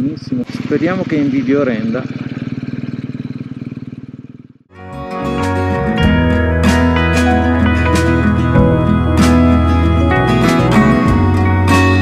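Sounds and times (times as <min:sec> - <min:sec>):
motorcycle engine running: 0:00.0 - 0:04.7, 0:05.4 - 0:12.0
slide guitar music: 0:04.7 - 0:12.0.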